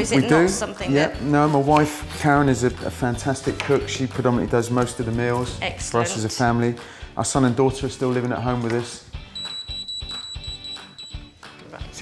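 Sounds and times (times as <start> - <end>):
background music with steady beat: 0.0 - 12.0
high electronic beep: 9.3 - 11.3.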